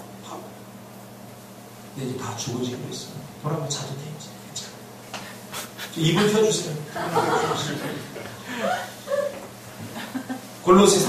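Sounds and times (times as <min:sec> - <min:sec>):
man speaking: 0:06.0 - 0:07.9
light chuckling laughter: 0:07.0 - 0:10.4.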